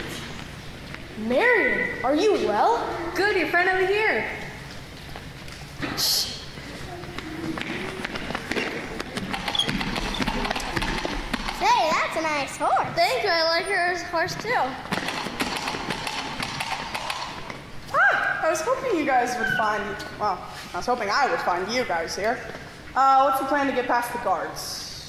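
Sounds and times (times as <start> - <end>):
footsteps on wooden stage: 6.8 - 11.8, 14.2 - 17.6.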